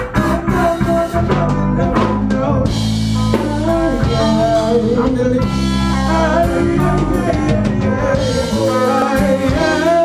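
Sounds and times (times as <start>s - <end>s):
drum kit strikes: 0.0s - 10.0s
held bass notes: 0.0s - 10.0s
live band playing: 0.0s - 10.0s.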